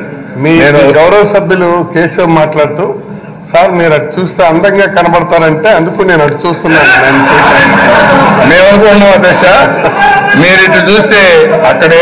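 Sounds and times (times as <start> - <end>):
men talking and shouting: 5.2 - 12.0.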